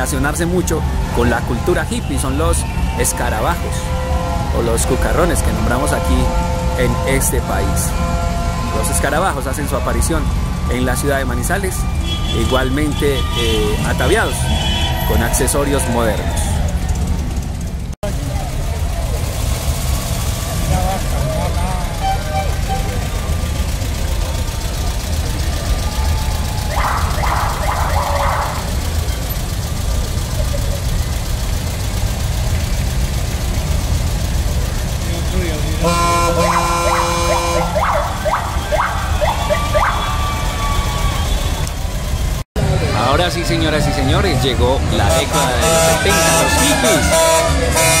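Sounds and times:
car horn: 0.0 - 17.0, 21.0 - 29.4, 35.0 - 41.8, 45.0 - 48.0
voices of onlookers: 0.0 - 32.7, 33.3 - 48.0
car engines rumbling: 0.0 - 48.0.

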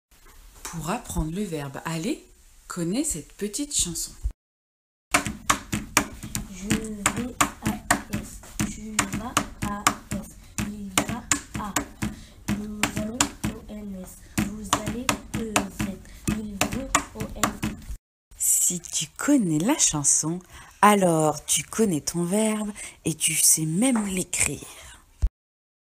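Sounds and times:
person singing: 6.4 - 17.8.

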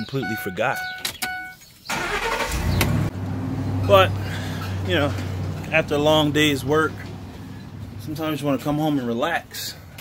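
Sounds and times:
truck warning chime: 0.0 - 2.5
truck engine idling: 1.9 - 9.1.

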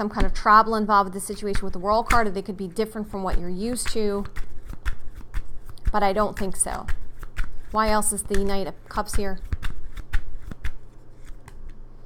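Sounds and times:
cards being shuffled: 1.3 - 11.9.

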